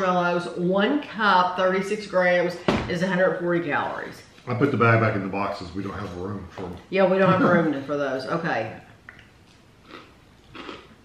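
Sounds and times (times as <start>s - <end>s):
chewing crunchy cereal: 9.2s - 11.0s.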